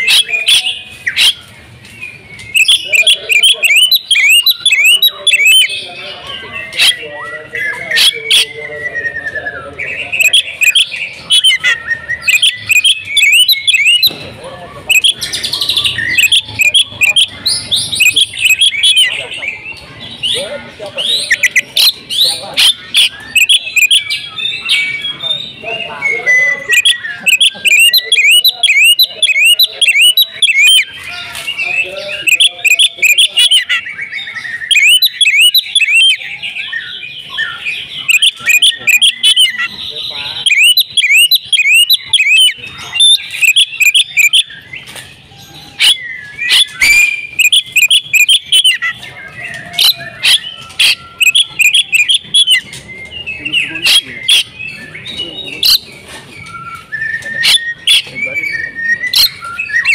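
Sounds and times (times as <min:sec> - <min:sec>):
bird singing chirped whistled notes: 0:00.0 - 0:59.9
bird sharp clicking notes: 0:45.8 - 0:58.2.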